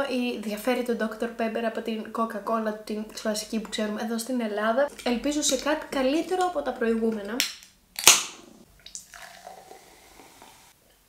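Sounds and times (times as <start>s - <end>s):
fizzy drink pouring: 8.7s - 10.8s.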